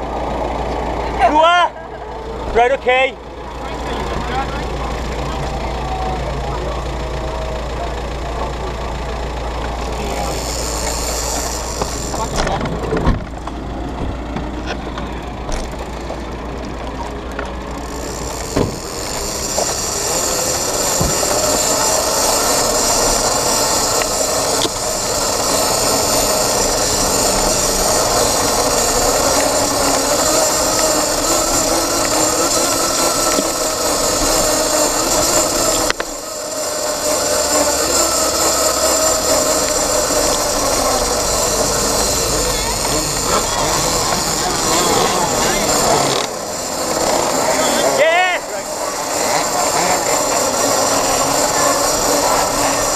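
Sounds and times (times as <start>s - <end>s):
motorcycle engine: 0.0s - 52.9s.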